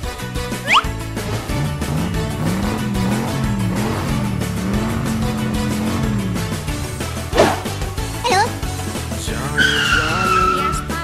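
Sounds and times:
children's background music: 0:00.0 - 0:11.0
tyre screech: 0:09.3 - 0:11.0.

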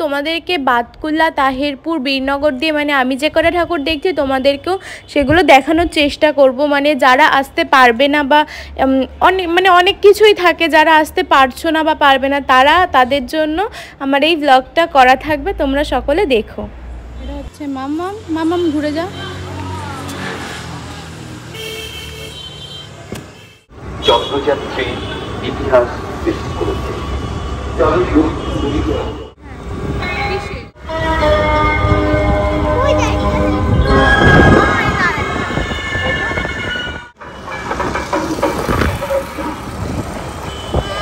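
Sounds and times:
road traffic: 0:00.0 - 0:41.0
vehicle horn: 0:21.5 - 0:25.4, 0:28.2 - 0:29.3, 0:30.2 - 0:34.6, 0:39.0 - 0:41.0.

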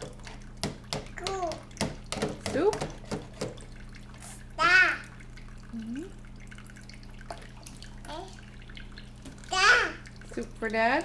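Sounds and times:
tap water trickling into tub: 0:00.0 - 0:11.0.

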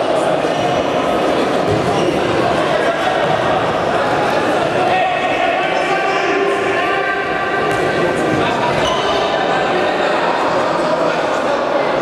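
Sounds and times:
echoing hall din: 0:00.0 - 0:12.0.

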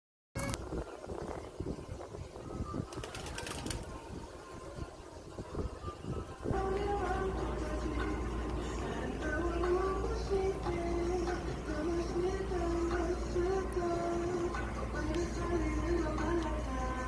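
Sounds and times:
music with steady bass line: 0:03.1 - 0:17.0.

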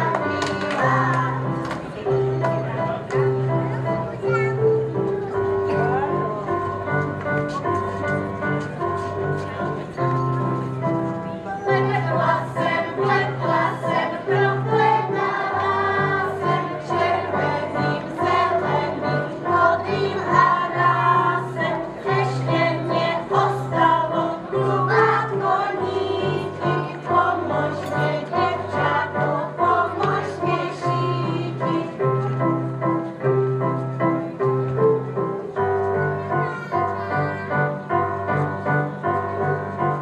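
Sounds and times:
children singing together: 0:11.7 - 0:31.9.

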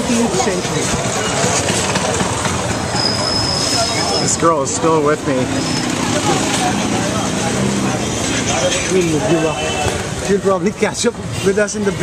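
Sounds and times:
street traffic: 0:00.0 - 0:12.0
nearby voices: 0:05.3 - 0:10.1.

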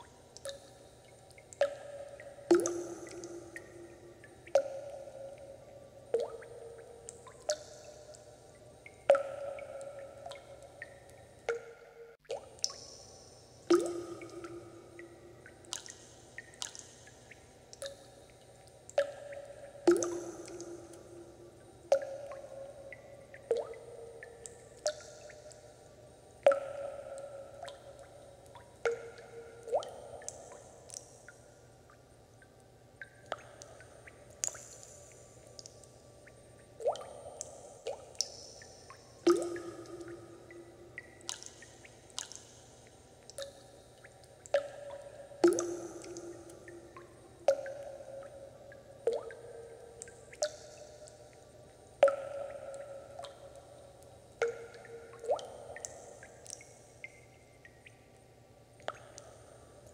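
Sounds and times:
water dripping plinks: 0:00.0 - 0:59.9.

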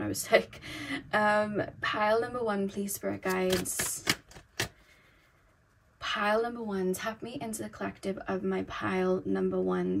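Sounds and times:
cards tapping: 0:03.2 - 0:04.8.

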